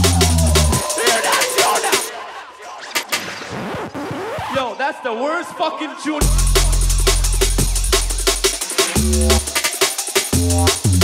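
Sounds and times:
drum and bass beat: 0:00.0 - 0:02.1, 0:05.8 - 0:11.0.

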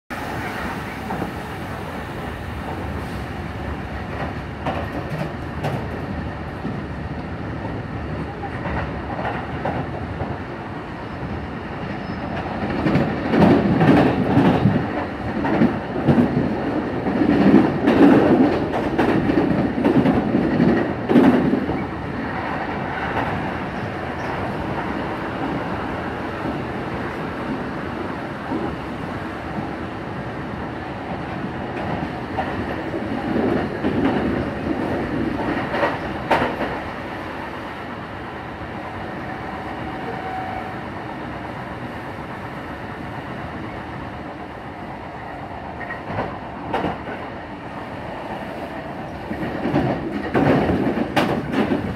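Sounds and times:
wheel clickety-clack: 0:49.2 - 0:51.9.

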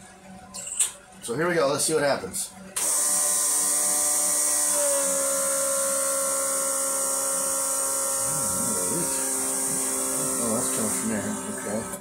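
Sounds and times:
electric fuel pump whining: 0:02.7 - 0:12.0.

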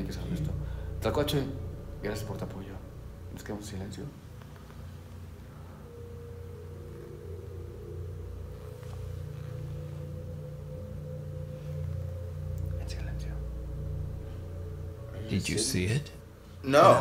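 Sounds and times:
soft whispering: 0:00.0 - 0:16.8
low rumble: 0:00.0 - 0:17.0
thin steady hum: 0:00.0 - 0:17.0.

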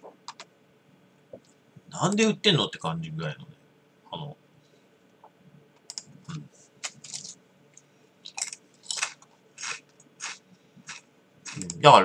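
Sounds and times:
person chewing crunchy snack: 0:06.8 - 0:07.4, 0:08.3 - 0:11.8.

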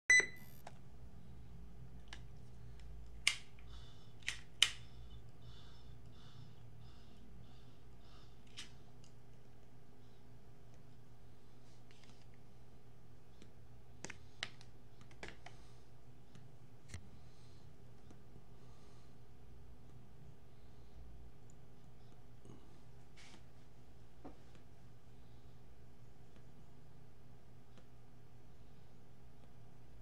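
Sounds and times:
double electronic beep: 0:00.1 - 0:00.6
faint low hum: 0:00.1 - 0:30.0.

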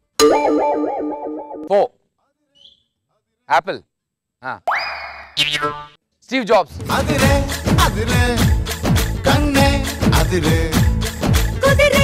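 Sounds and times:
electronic jingle: 0:00.2 - 0:01.8
cartoon boing: 0:04.7 - 0:06.0.

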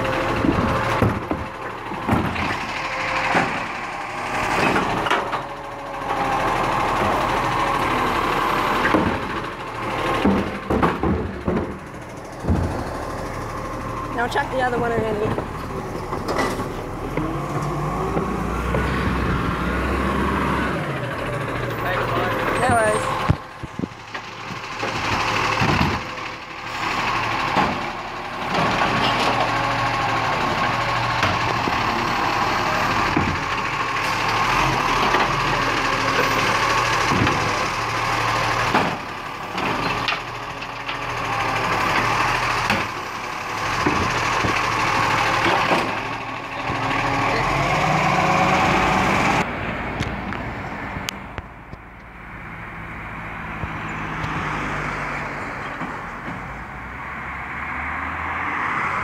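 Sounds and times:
garbage truck engine and hydraulics: 0:00.0 - 0:59.0.

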